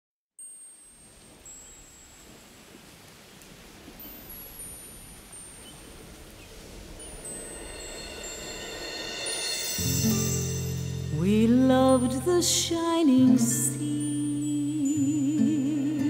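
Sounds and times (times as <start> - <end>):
high tinkling chimes: 0.4 - 2.9, 4.0 - 12.3
soft hiss: 0.4 - 16.0.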